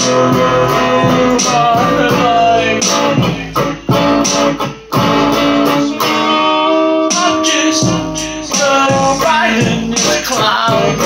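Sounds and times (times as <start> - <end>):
electric guitar chords ringing: 0.0 - 11.0.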